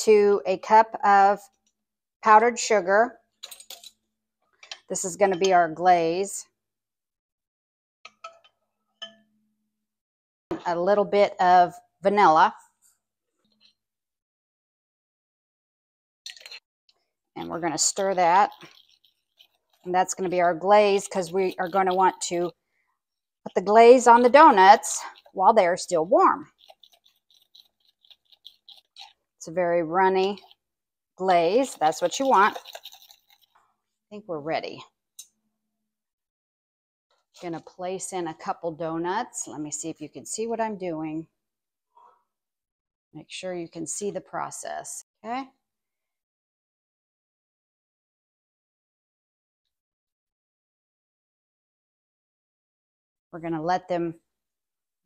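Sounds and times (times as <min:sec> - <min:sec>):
metal spoon clinking on saucepan: 0:03.4 - 0:04.0, 0:08.1 - 0:09.3.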